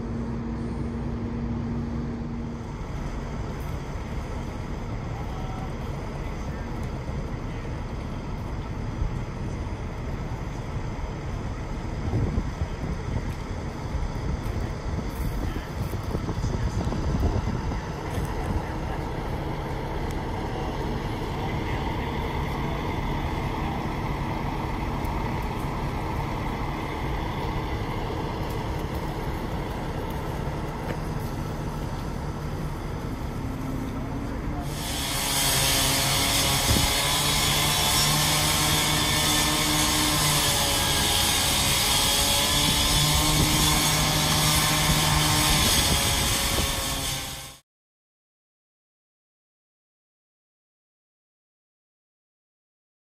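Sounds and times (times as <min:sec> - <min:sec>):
large engine humming: 0:00.0 - 0:47.6.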